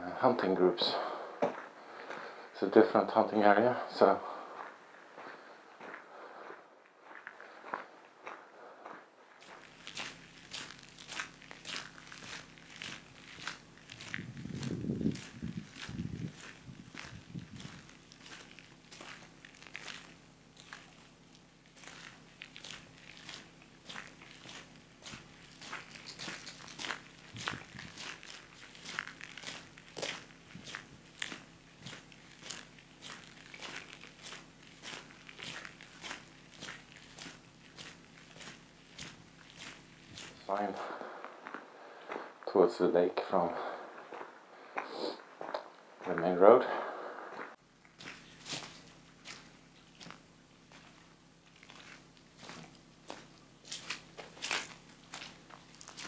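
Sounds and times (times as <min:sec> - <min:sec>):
footsteps on gravel: 0:00.8 - 0:56.0.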